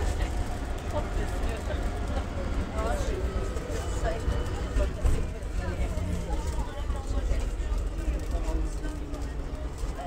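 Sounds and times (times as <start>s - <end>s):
bus engine and road rumble: 0.0s - 10.0s
passengers talking: 0.0s - 10.0s.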